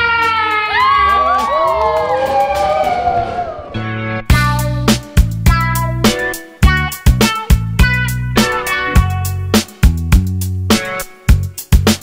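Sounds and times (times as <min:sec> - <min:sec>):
people whooping: 0:00.0 - 0:03.8
music with fast beat: 0:04.3 - 0:12.0.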